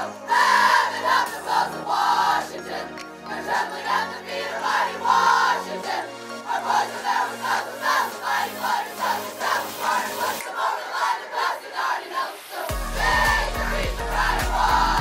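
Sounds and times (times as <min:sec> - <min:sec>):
women singing and shouting: 0:00.0 - 0:15.0.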